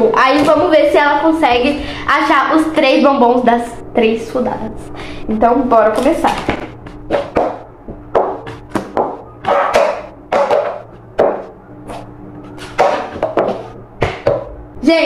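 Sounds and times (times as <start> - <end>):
plastic bowls knocking and scraping: 6.2 - 14.5.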